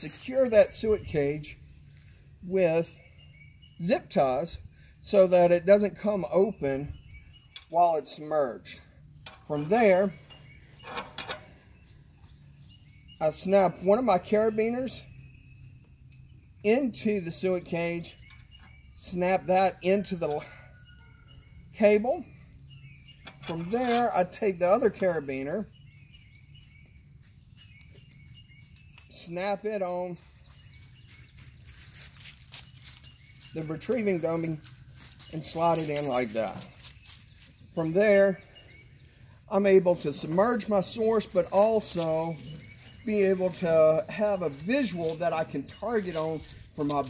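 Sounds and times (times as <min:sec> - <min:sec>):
handling rustles: 0:31.3 - 0:33.6.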